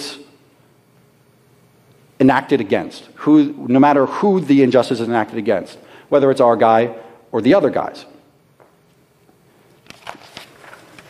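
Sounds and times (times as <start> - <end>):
paper rustling and tapping: 9.8 - 11.0.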